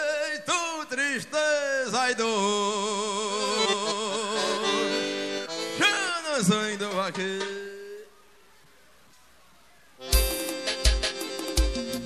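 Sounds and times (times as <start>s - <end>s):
accordion chords: 1.8s - 8.1s, 10.0s - 12.0s
accordion pitch slides: 3.1s - 8.0s, 10.0s - 12.0s.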